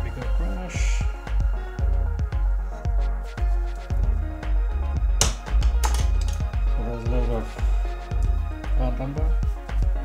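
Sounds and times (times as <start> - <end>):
electronic music with bass beat: 0.0 - 10.0.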